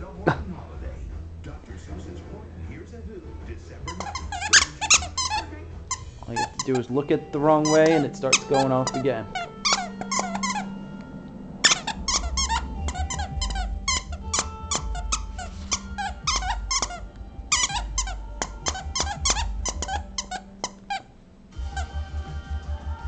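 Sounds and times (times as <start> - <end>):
dog chewing toy: 3.8 - 7.0, 7.6 - 21.0
dog toy squeaking: 3.9 - 10.8, 11.6 - 21.1.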